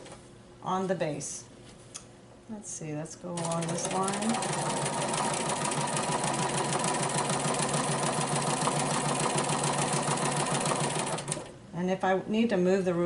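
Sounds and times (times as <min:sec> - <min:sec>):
sewing machine stitching rapidly: 0:03.4 - 0:11.5.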